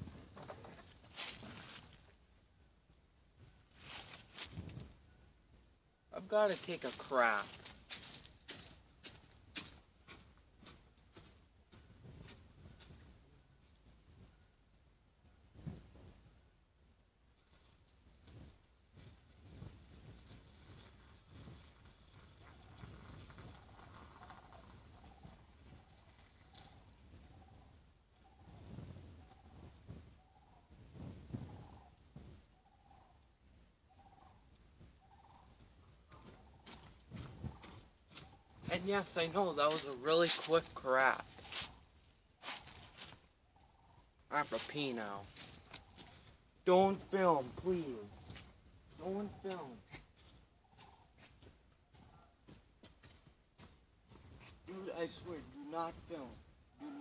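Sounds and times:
footsteps on wet muddy grass: 0:00.9 - 0:02.2, 0:03.7 - 0:04.8, 0:06.2 - 0:13.1, 0:35.6 - 0:43.3, 0:44.4 - 0:55.5
distant animal call: 0:33.8 - 0:36.8, 0:56.7 - 0:57.0.

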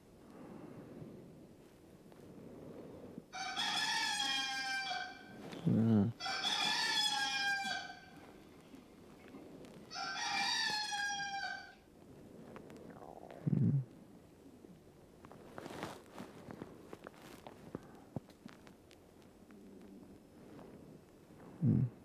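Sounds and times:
rooster crowing: 0:03.3 - 0:05.4, 0:06.2 - 0:08.2, 0:09.9 - 0:11.8.

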